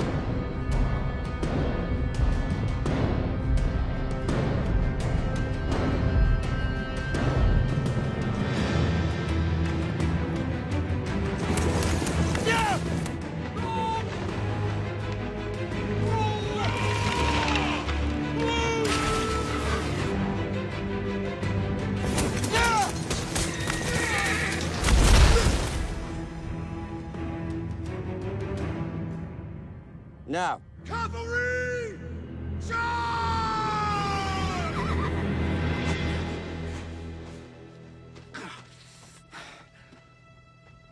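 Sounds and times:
dramatic orchestral score: 0.0s - 40.9s
person shouting: 12.4s - 12.9s, 32.6s - 34.8s
horse whinnying: 16.6s - 17.9s, 23.4s - 24.6s
low music drone: 32.0s - 40.9s.

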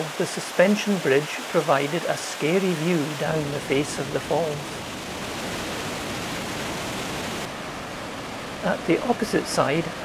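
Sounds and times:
waterfall roaring: 0.0s - 10.0s.

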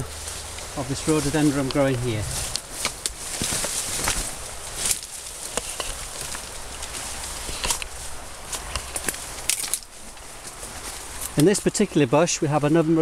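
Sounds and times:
branches rustling and snapping: 0.0s - 11.6s
footsteps on leaf litter: 0.0s - 11.8s.

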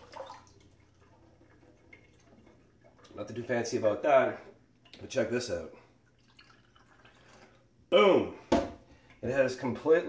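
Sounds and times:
water trickling into glass: 0.0s - 3.2s, 6.0s - 7.6s
faint water dripping: 0.0s - 7.9s, 8.8s - 10.0s.

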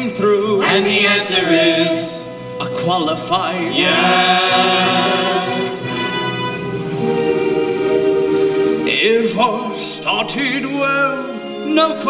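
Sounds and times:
orchestral chords: 0.6s - 11.9s.

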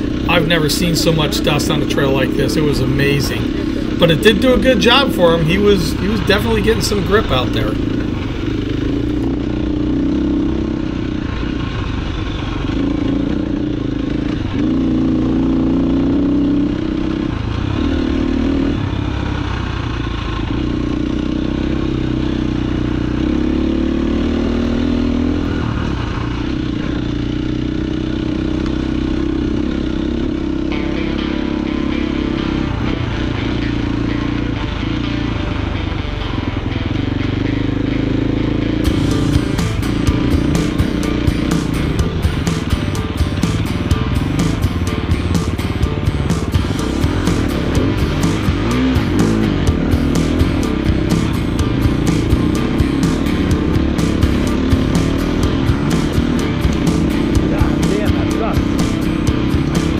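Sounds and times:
dirt bike engine revving: 0.0s - 59.9s.

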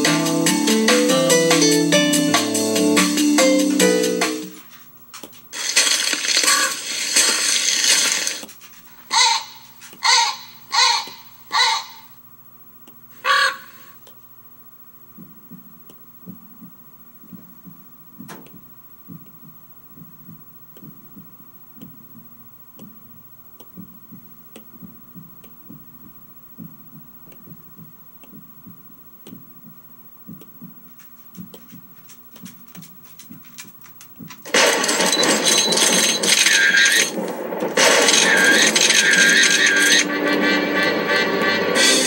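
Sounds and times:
short harsh calls: 9.1s - 12.2s, 13.2s - 14.0s.

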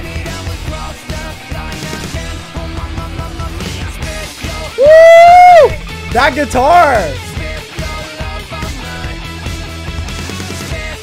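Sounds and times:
hard rock with electric guitar: 0.0s - 11.0s
man shouting woo: 4.7s - 7.2s.

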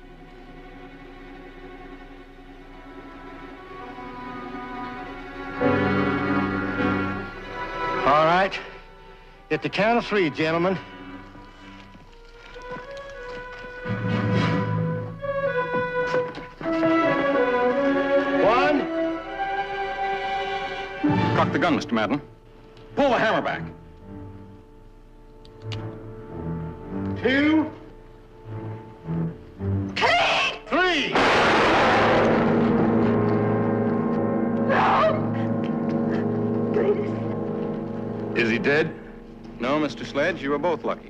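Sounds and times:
pistol shot: 31.2s - 33.0s
dramatic background music: 31.2s - 41.0s.

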